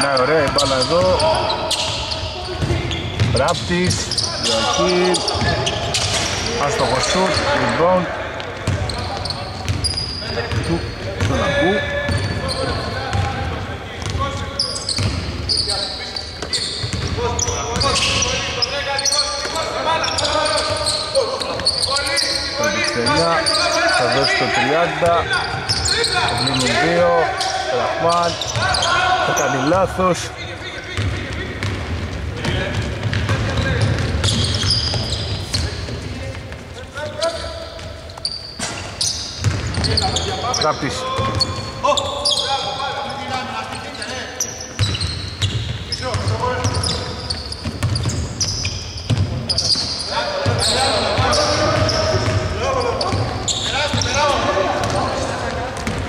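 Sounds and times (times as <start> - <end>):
players calling out: 0.0 - 56.0
sneakers squeaking: 0.0 - 56.0
basketball bouncing: 2.5 - 4.0, 8.4 - 14.2, 15.0 - 15.4, 16.4 - 18.2, 31.0 - 36.6, 39.4 - 40.2, 41.2 - 41.7, 47.6 - 49.6, 50.4 - 54.2, 54.8 - 56.0.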